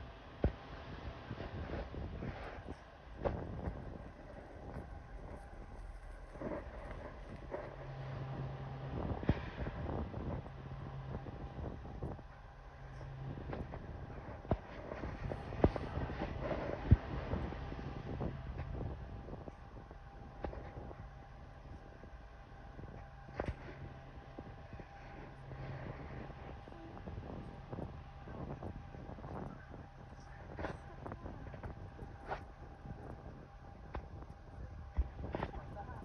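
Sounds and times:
distant locomotive engine drone: 0:00.0 - 0:36.0
wind noise on microphone: 0:00.0 - 0:36.0.

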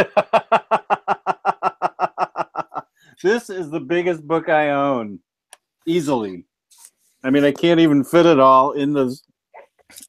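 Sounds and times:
man laughing: 0:00.0 - 0:02.8.

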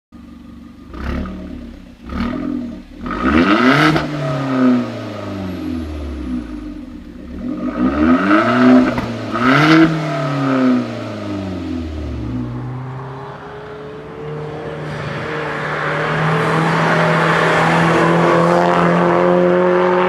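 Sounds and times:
car engine revving: 0:00.2 - 0:20.0.

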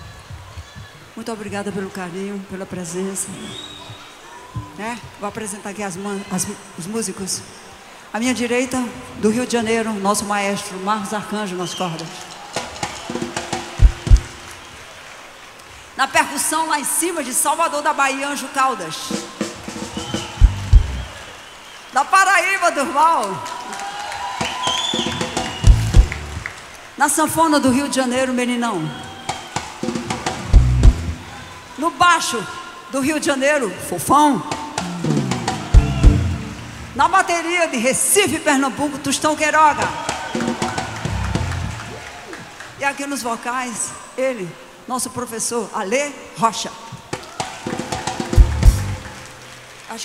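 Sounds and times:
heavy low thumps: 0:13.8 - 0:14.3, 0:20.3 - 0:21.1, 0:25.6 - 0:26.4, 0:30.4 - 0:31.2, 0:34.8 - 0:37.0, 0:41.0 - 0:42.0, 0:48.4 - 0:49.0
deep loud drum hits: 0:13.8 - 0:14.4, 0:20.3 - 0:21.1, 0:25.6 - 0:26.4, 0:30.4 - 0:31.2, 0:34.8 - 0:36.9, 0:40.9 - 0:42.0, 0:48.4 - 0:49.0
electric bass guitar run: 0:20.4 - 0:21.1, 0:25.6 - 0:26.4, 0:30.5 - 0:31.2, 0:34.8 - 0:36.9, 0:41.0 - 0:41.9, 0:48.4 - 0:49.0
band held note: 0:34.8 - 0:37.0.

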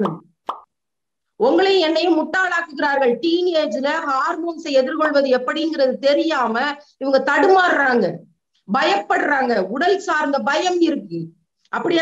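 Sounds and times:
woman speaking: 0:01.4 - 0:12.0.

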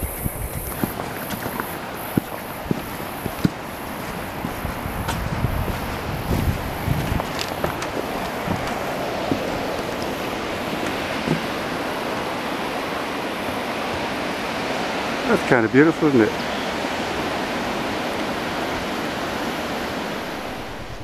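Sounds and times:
footsteps on wooden steps: 0:00.0 - 0:14.2
wind on microphone: 0:00.0 - 0:15.2, 0:16.4 - 0:21.0
ocean surf rushing: 0:00.0 - 0:21.0.

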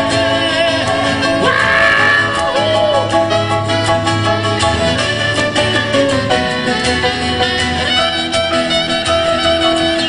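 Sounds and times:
live pop band instrumental: 0:00.0 - 0:10.0
saxophone lines: 0:01.4 - 0:03.2.

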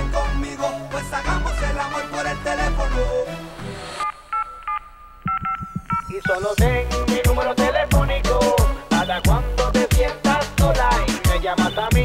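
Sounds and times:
phone keypad two-tone beeps: 0:04.0 - 0:06.6.

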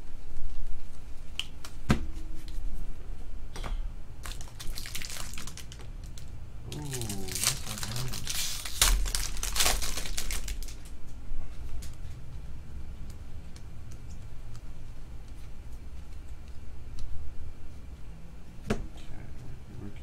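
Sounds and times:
cards rustling: 0:04.2 - 0:11.0.

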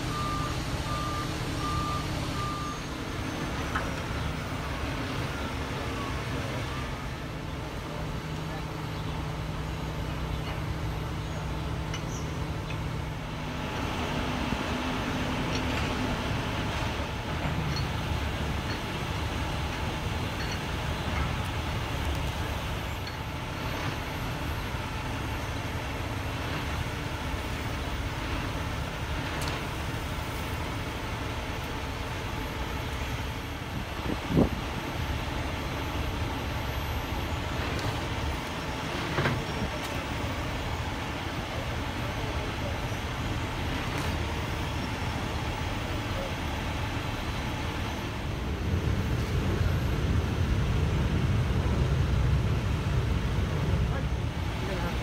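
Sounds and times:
diesel engine idling: 0:00.0 - 0:55.0.

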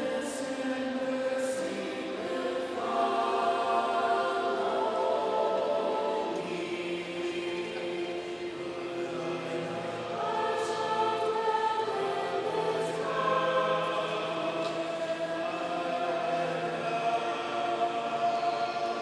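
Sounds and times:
choir singing sustained chords: 0:00.0 - 0:19.0.

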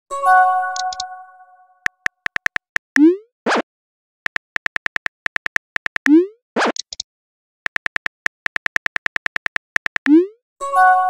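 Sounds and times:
phone keyboard clicks: 0:00.8 - 0:01.1, 0:01.8 - 0:03.0, 0:04.3 - 0:06.1, 0:06.7 - 0:07.0, 0:07.7 - 0:10.1.

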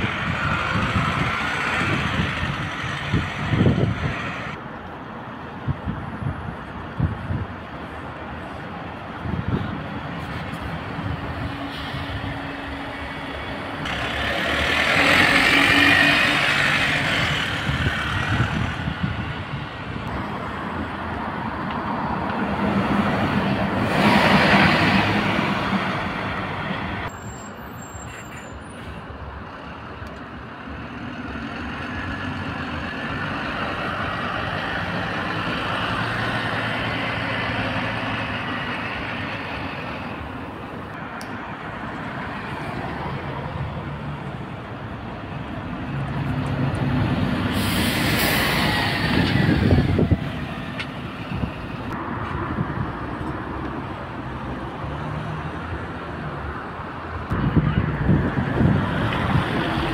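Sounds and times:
buses and cars driving past: 0:00.0 - 0:59.9
engine and tyre noise: 0:00.0 - 0:59.9.

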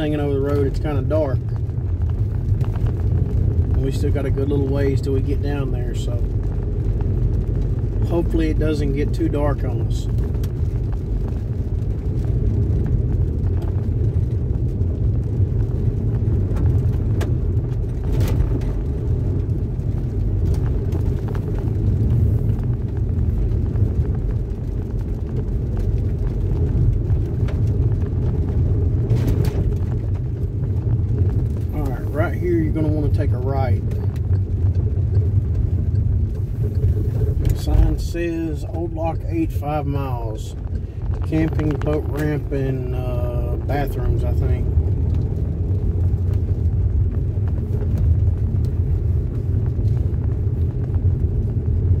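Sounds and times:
tyres rumbling on dirt road: 0:00.0 - 0:52.0.

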